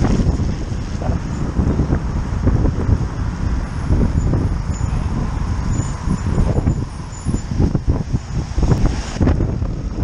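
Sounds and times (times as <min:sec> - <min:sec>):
van driving: 0:00.0 - 0:10.0
wind buffeting microphone: 0:00.0 - 0:10.0.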